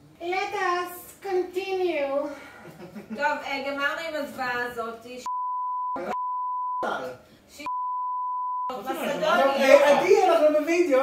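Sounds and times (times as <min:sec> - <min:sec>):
censor bleep tone: 0:05.3 - 0:06.9, 0:07.6 - 0:08.8.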